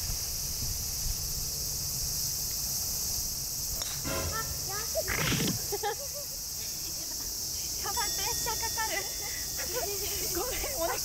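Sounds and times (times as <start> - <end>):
insects chorus: 0.0 - 11.0.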